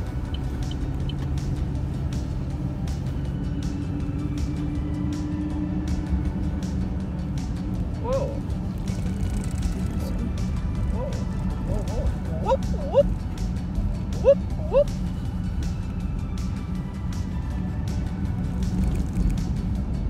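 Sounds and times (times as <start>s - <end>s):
car road and engine noise: 0.0s - 20.0s
music playing: 0.0s - 20.0s.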